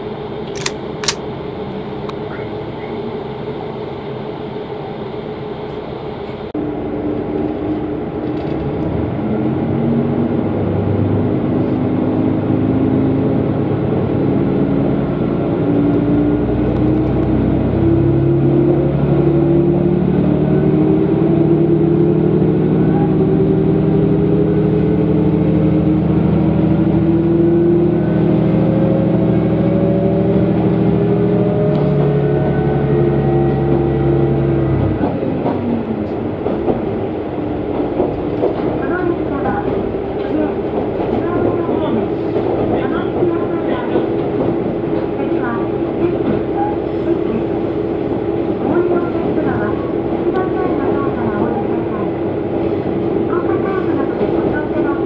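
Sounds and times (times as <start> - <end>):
diesel railcar engine roaring: 0.0 - 55.0.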